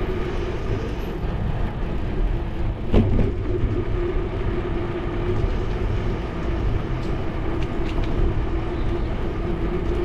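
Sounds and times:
bicycle tyres rolling on asphalt: 0:00.0 - 0:10.0.

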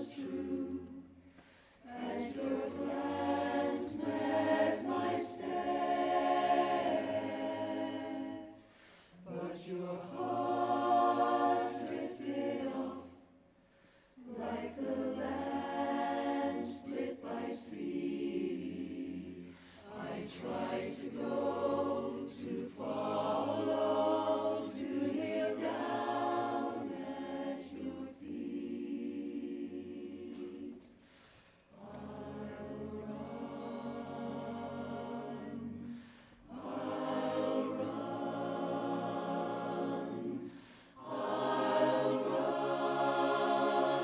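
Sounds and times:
barbershop chorus singing a cappella: 0:00.0 - 0:13.4, 0:14.1 - 0:44.0.

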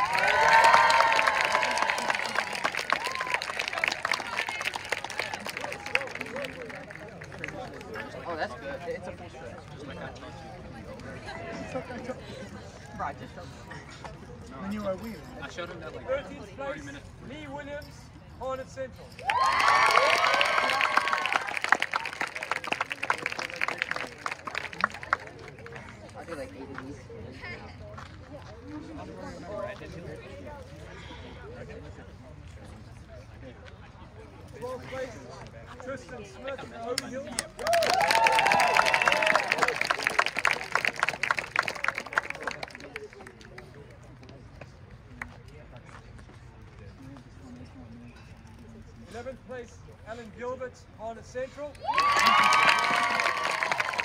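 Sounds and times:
spectators clapping and cheering: 0:00.0 - 0:08.4, 0:19.2 - 0:26.9, 0:37.0 - 0:43.8, 0:51.8 - 0:54.0
small crowd applauding: 0:00.0 - 0:08.5, 0:19.2 - 0:26.9, 0:36.9 - 0:44.4, 0:51.8 - 0:54.0
low background murmur: 0:00.0 - 0:54.0
faint voices talking: 0:01.2 - 0:51.8.

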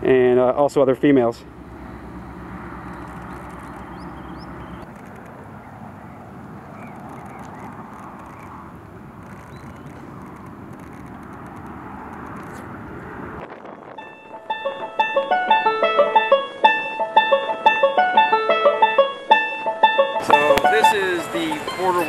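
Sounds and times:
high bird chirps: 0:01.5 - 0:04.9, 0:05.6 - 0:08.6, 0:09.4 - 0:10.3
outdoor pond background noise: 0:01.6 - 0:12.6
banjo and piano music: 0:14.0 - 0:22.0.

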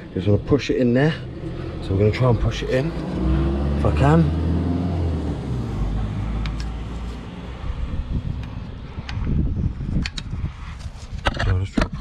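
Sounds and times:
low rumble: 0:00.3 - 0:10.7.

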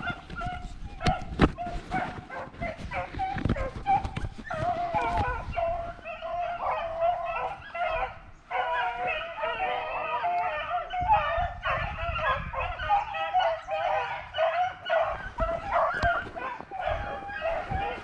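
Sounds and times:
hounds baying: 0:00.0 - 0:18.0.

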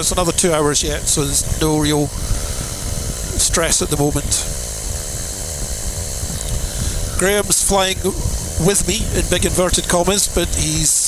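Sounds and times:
microlight engine and propeller drone: 0:00.0 - 0:11.0
rushing air: 0:00.0 - 0:11.0.

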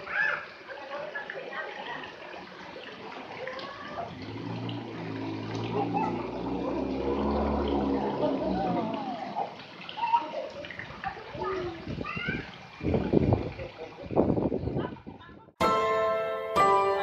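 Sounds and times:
distant voices of people and children: 0:00.0 - 0:04.2, 0:05.6 - 0:13.6
splashing water: 0:00.0 - 0:15.3.

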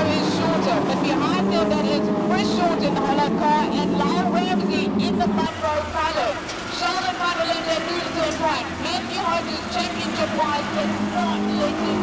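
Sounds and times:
race car engines at speed: 0:00.0 - 0:12.0.

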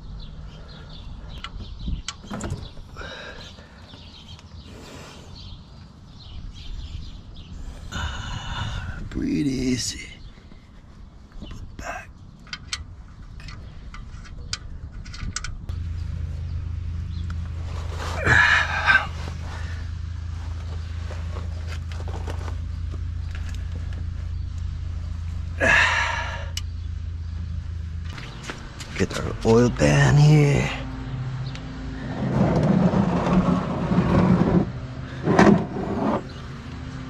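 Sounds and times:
steady low hum: 0:09.9 - 0:30.0.

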